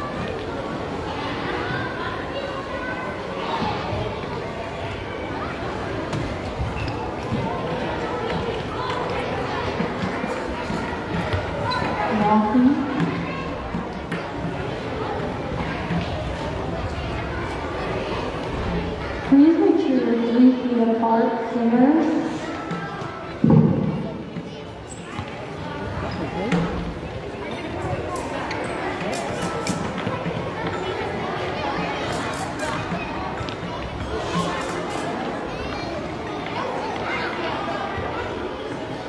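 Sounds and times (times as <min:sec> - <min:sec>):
children chattering: 0:00.0 - 0:39.0.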